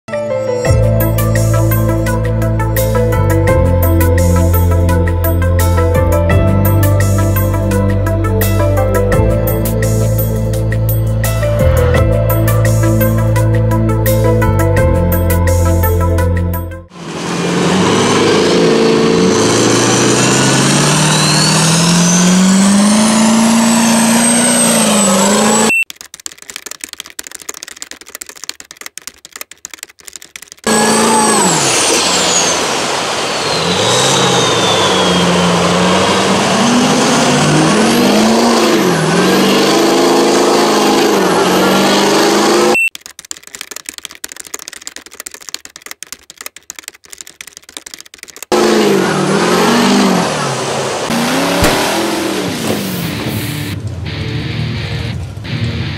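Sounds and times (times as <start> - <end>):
diesel truck engine revving: 1.0 - 25.8, 30.7 - 42.8, 48.5 - 55.4
high whistle: 33.3 - 36.2.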